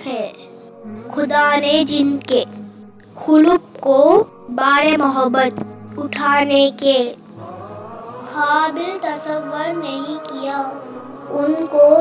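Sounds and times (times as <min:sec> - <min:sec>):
high voice chanting melody: 0:00.0 - 0:12.0.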